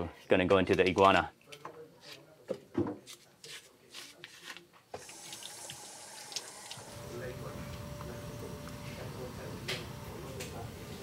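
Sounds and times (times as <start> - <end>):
tap water running into metal sink: 5.0 - 6.9.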